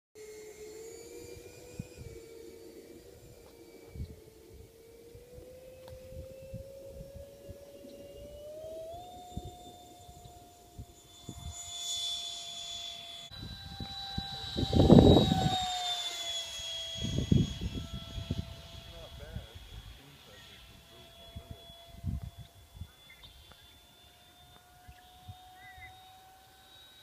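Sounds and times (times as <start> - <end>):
electric ducted-fan motor whining: 0.2 - 27.0.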